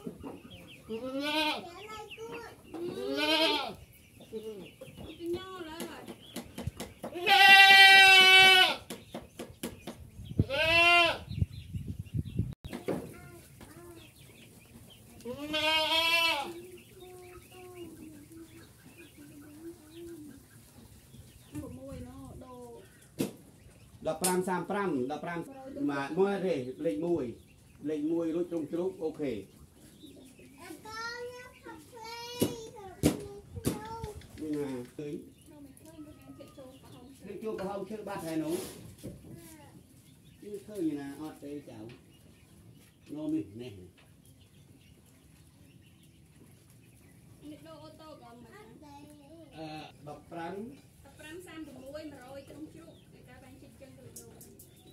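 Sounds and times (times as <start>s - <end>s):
goats bleating: 0.9s - 1.8s, 2.8s - 3.8s, 7.1s - 8.8s, 10.4s - 11.3s, 15.2s - 16.6s.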